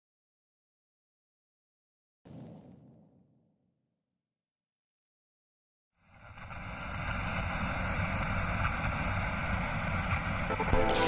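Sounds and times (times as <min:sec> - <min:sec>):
high hiss: 0:06.1 - 0:11.0.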